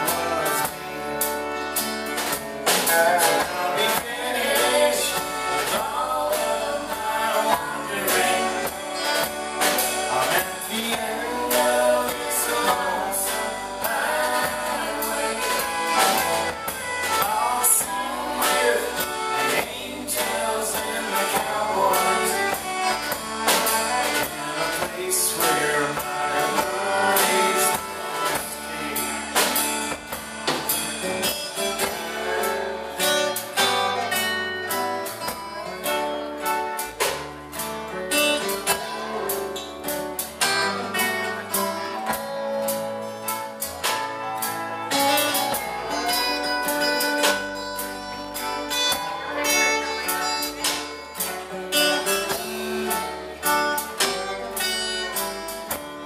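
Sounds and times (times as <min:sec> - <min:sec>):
drum kit: 0:00.0 - 0:56.0
electric bass: 0:00.0 - 0:56.0
fiddle melody: 0:00.0 - 0:56.0
strummed acoustic guitar: 0:00.0 - 0:56.0.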